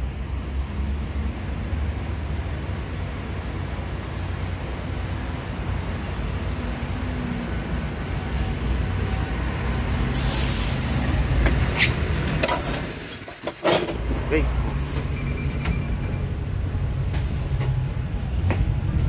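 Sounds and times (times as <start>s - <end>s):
bus engine running: 0.0s - 19.0s
air hiss of bus doors: 9.6s - 13.6s.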